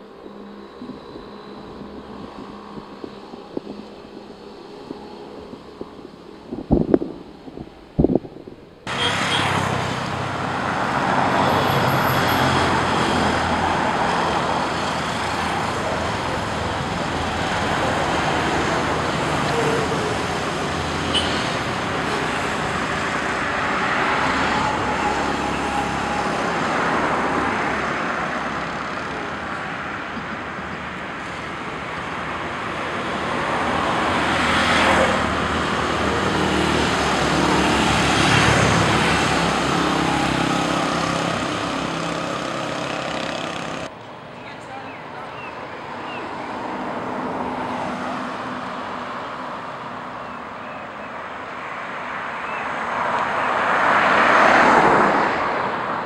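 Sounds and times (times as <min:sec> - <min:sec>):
motorcycles passing: 0:00.0 - 0:50.3
cars passing: 0:00.0 - 0:56.0.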